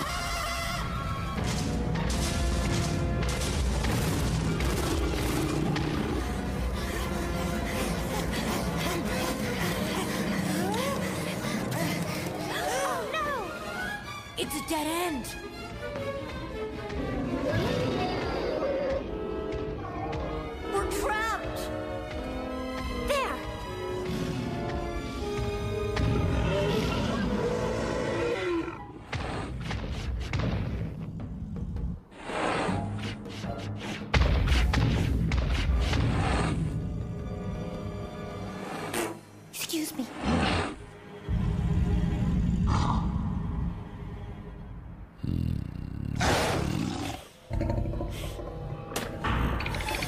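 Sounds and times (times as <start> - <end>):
dramatic orchestral music: 0.0 - 31.9, 32.7 - 45.2
cartoon dinosaur roaring: 45.2 - 48.4.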